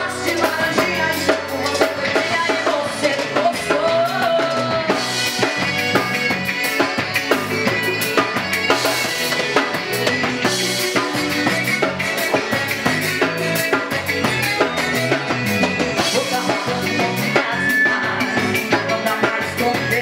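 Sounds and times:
drum kit beat: 0.0 - 20.0
live band playing: 0.0 - 20.0.

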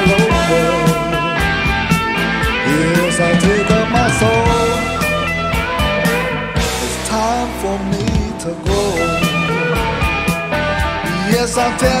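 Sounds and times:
bass guitar: 0.0 - 12.0
electric guitar bending notes: 0.0 - 12.0
steady drum beat: 0.0 - 12.0.

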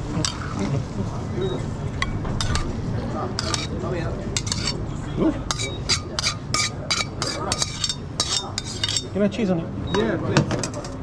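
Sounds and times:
metal tongs scraping a pan: 0.2 - 0.7, 2.0 - 2.8, 3.4 - 3.8, 4.4 - 4.8, 5.5 - 9.1.

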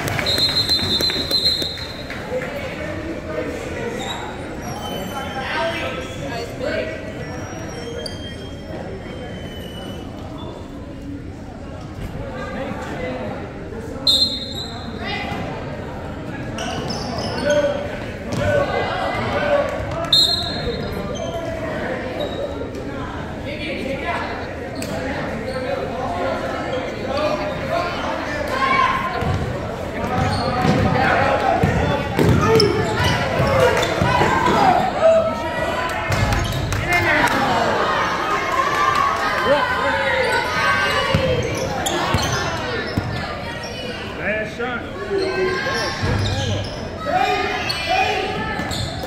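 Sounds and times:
people talking and calling out: 0.0 - 49.0.

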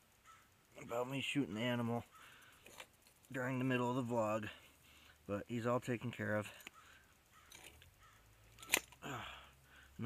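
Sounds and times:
faint handling sounds: 2.0 - 3.4.

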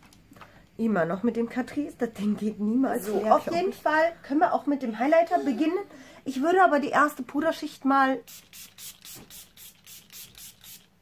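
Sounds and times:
spray bottle hissing sprays: 8.2 - 11.0.

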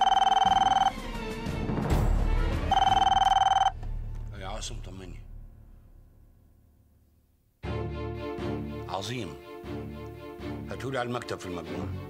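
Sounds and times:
desk telephone ringing: 0.0 - 0.9, 2.7 - 3.7.

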